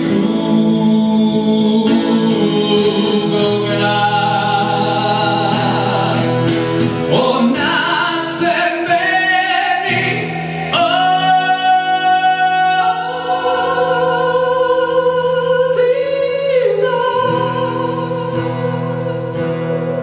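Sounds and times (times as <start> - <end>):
man singing long notes: 0.0 - 20.0
strummed acoustic guitar: 0.0 - 20.0.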